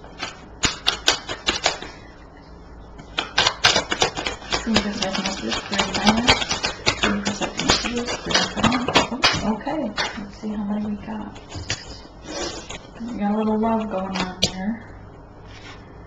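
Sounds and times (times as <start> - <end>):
cards being shuffled: 0.1 - 2.0, 3.0 - 10.2, 15.4 - 15.8.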